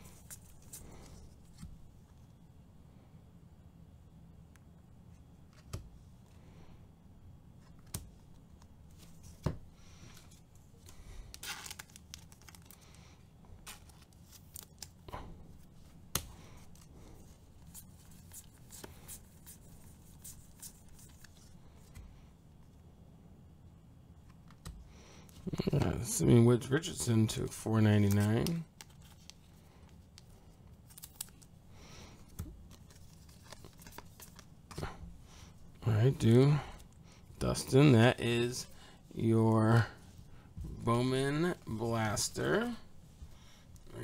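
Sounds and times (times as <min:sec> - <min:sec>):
cards rustling: 0:00.0 - 0:01.8, 0:07.6 - 0:22.2, 0:27.0 - 0:39.9
low steady hum: 0:00.0 - 0:44.0.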